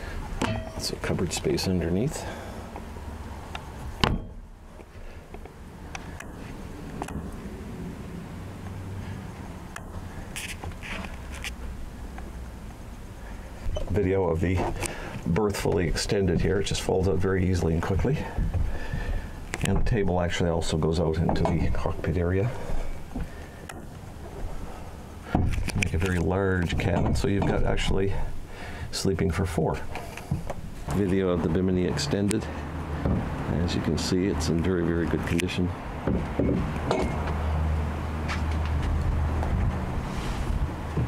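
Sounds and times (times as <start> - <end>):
low steady hum: 0.0 - 34.8
low steady background noise: 0.0 - 41.0.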